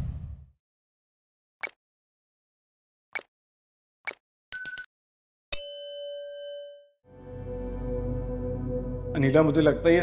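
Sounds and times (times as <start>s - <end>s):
bell chime ding: 4.6s - 4.9s, 5.5s - 7.0s.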